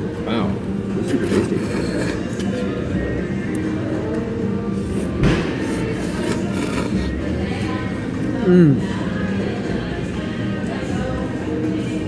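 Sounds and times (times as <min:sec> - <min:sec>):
background music: 0:00.0 - 0:12.0
person slurping noodles: 0:01.0 - 0:02.8, 0:04.8 - 0:07.4.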